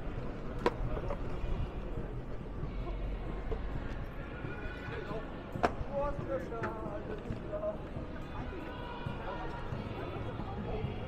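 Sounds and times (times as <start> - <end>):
passersby talking: 0.0 - 11.0.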